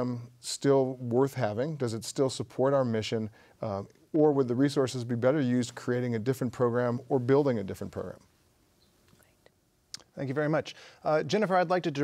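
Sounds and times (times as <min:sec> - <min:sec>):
man speaking: 0:00.0 - 0:08.3, 0:10.0 - 0:12.0.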